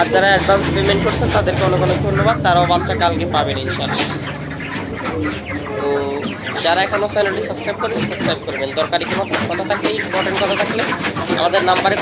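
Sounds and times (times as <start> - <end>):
chickens clucking and chirping: 0.0 - 12.0.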